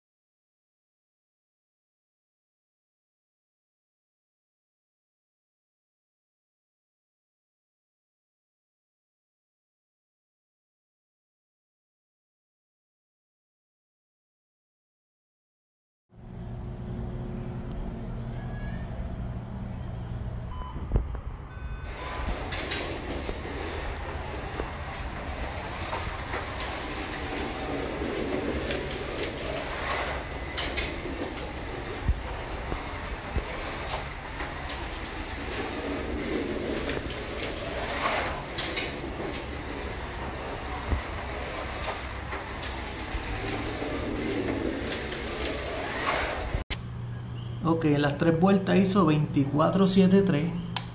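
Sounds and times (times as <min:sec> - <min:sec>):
slot car motor whining: 0:21.7 - 0:46.7
slot car tyres rumbling: 0:21.9 - 0:46.8.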